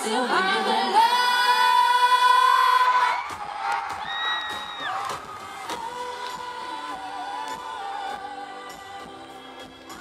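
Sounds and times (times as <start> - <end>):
crowd cheering and whooping: 2.4 - 8.4.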